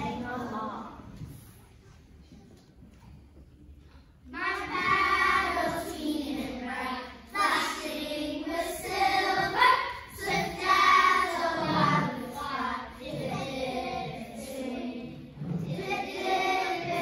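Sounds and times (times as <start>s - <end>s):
children singing together: 0.0s - 1.3s, 4.3s - 17.0s.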